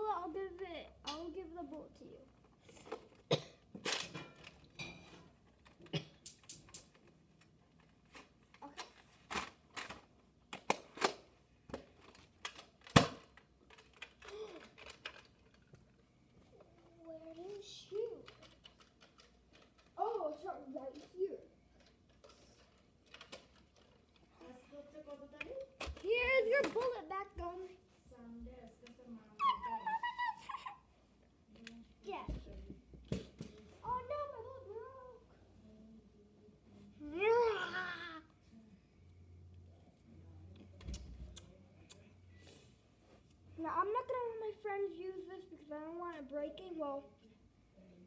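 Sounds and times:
child's wordless voice: 0.0s - 3.0s, 8.6s - 9.0s, 16.5s - 18.6s, 19.9s - 21.5s, 33.6s - 35.6s, 36.9s - 38.3s, 43.5s - 47.4s.

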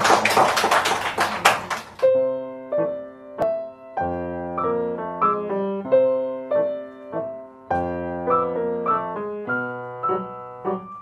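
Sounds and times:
audience applauding: 0.0s - 2.1s.

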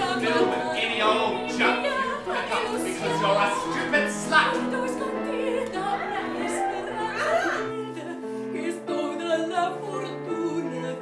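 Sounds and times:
person singing with vibrato: 0.0s - 11.0s.

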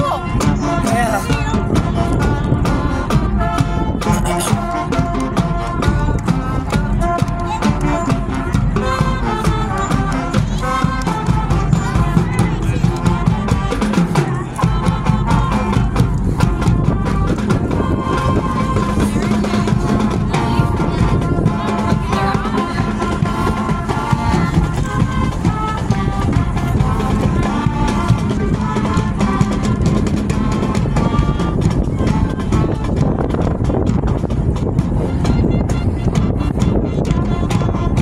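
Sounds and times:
brass and woodwinds: 0.0s - 38.0s
steady drum beat: 0.0s - 38.0s.

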